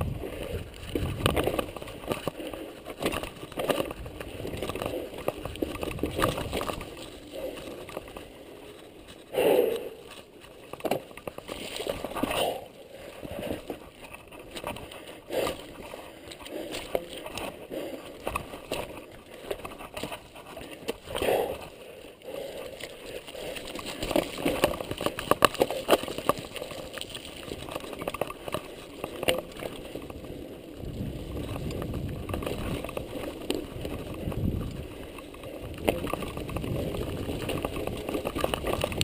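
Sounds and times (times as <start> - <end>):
wind on microphone: 0.0 - 2.1, 30.2 - 39.0
bike rattling over bumps: 0.0 - 39.0
tyre noise on dirt: 0.0 - 39.0.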